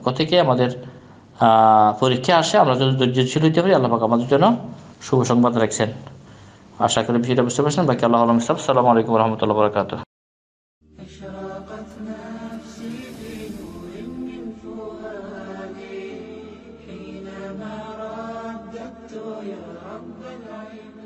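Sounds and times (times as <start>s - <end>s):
voice chanting melodically: 11.0s - 19.2s
hissing sweep: 11.9s - 16.9s.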